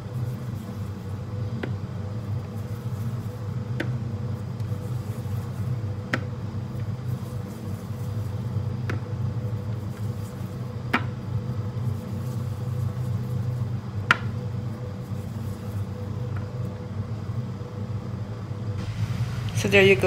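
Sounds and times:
low machine hum: 0.0 - 20.0.

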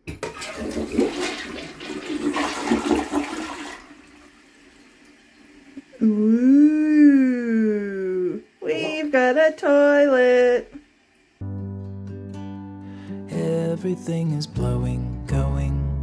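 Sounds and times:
long drawn-out voice: 5.9 - 10.8.

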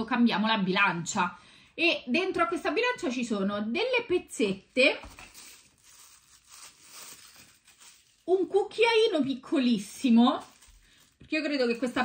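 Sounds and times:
packaging rustling and crinkling: 5.0 - 12.0.

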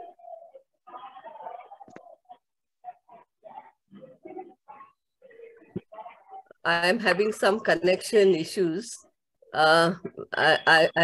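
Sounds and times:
choppy voice on video call: 0.0 - 11.0.

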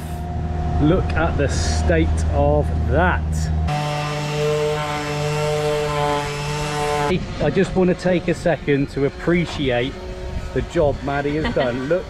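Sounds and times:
power tool motor whining: 3.7 - 12.0.

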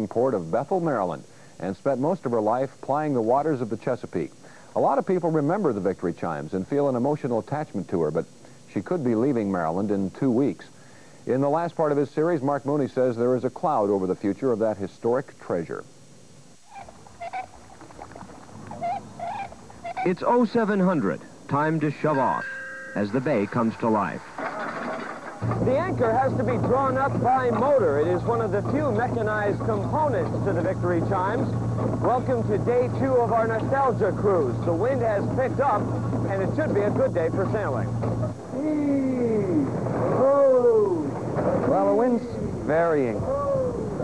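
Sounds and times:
birds wavering cries: 16.7 - 20.3.

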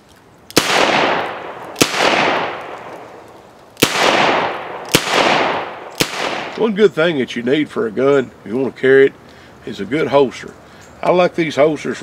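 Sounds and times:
revolver shots echoing: 0.6 - 6.7.

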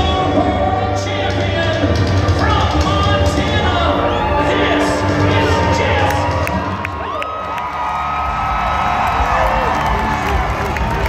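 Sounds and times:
low background music: 0.0 - 11.0
crowd cheering and whooping: 3.6 - 11.0.

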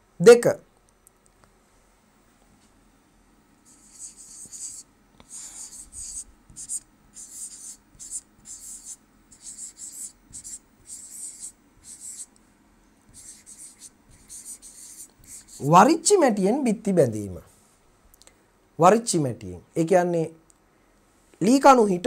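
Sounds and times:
stylus scratching on touchscreen: 3.7 - 12.3, 13.1 - 15.8.

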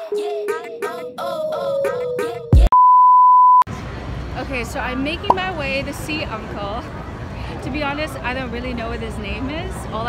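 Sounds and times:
intro music with voice-like melody: 0.0 - 2.7
steady test tone beep: 2.7 - 3.7
street noise: 3.6 - 10.0.

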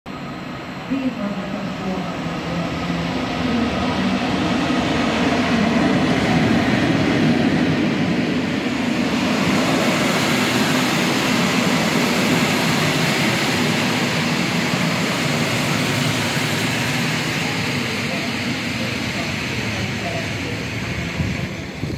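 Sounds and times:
electric locomotive hum: 0.1 - 21.9
train wheels on rails: 1.6 - 21.9.

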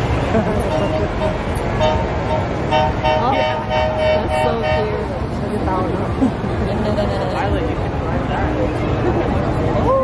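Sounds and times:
crowd noise: 0.0 - 10.0
vehicle horn tooting: 0.6 - 5.0.

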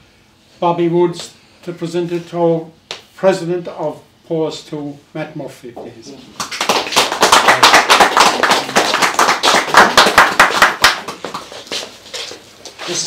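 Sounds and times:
small group clapping: 5.8 - 12.4.

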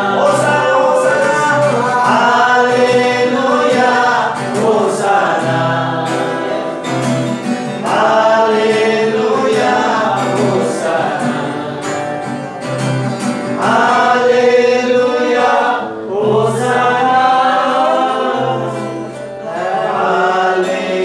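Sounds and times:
acoustic guitar: 0.0 - 21.0
voices singing worship song: 0.0 - 21.0.

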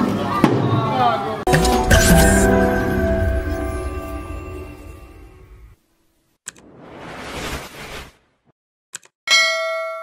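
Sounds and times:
notification bell ding: 1.5 - 5.6
whoosh: 6.5 - 8.5.

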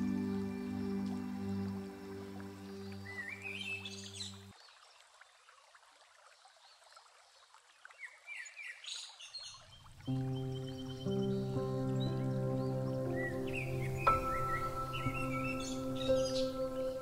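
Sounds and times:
soft instrumental music: 0.0 - 4.5, 10.0 - 17.0
songbird singing: 0.0 - 5.0, 7.9 - 17.0.

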